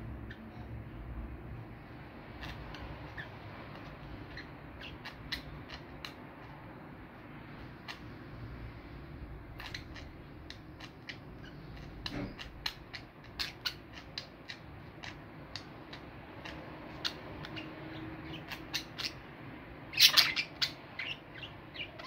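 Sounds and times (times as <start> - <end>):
low background hum: 0.0 - 22.0
budgerigars chirping: 0.2 - 0.7, 2.3 - 6.6, 7.5 - 8.2, 9.5 - 22.0.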